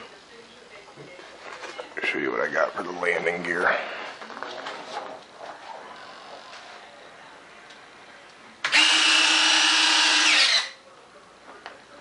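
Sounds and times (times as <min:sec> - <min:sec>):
electric motors whirring: 0:08.7 - 0:10.7.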